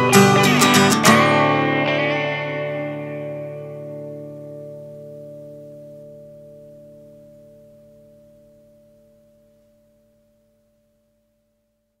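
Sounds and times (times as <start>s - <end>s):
guitar chord ringing out: 0.0s - 10.7s.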